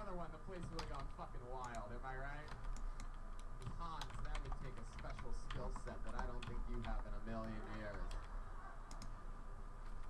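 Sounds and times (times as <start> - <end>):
computer keyboard keys clicking: 0.6 - 8.3, 8.9 - 9.1.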